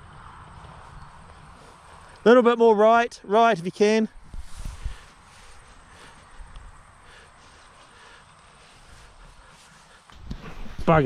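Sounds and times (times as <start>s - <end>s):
faint outdoor background noise: 0.0s - 11.0s
wind rumble on microphone: 4.2s - 5.6s.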